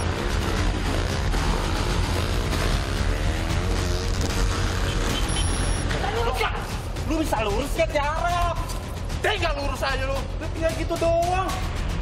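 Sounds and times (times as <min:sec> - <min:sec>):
motorcycle engine running: 0:00.0 - 0:05.9
road and wind noise: 0:00.0 - 0:07.2.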